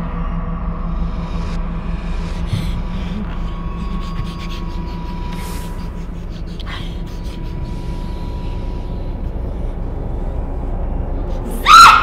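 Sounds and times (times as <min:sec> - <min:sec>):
low steady drone: 0:00.0 - 0:12.0
high-pitched human scream: 0:11.6 - 0:12.0.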